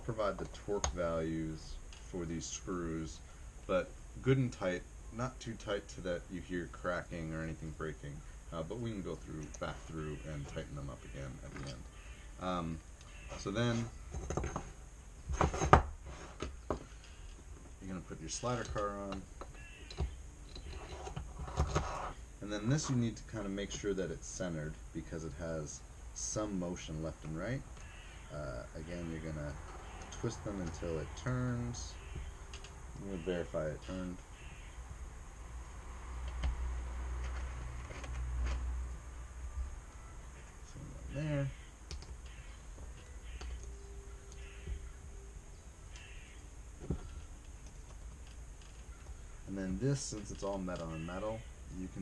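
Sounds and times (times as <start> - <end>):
light scraping of parts: 13.0 - 24.0, 36.3 - 38.8
rig parts clicking: 16.4 - 21.9, 29.5 - 33.1.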